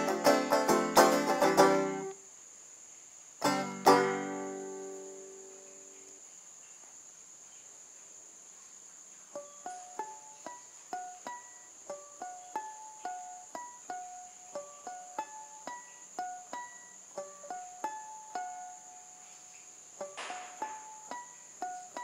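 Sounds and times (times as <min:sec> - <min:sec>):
banjo picked melody: 0:00.0 - 0:02.2, 0:03.4 - 0:06.1, 0:09.3 - 0:22.0.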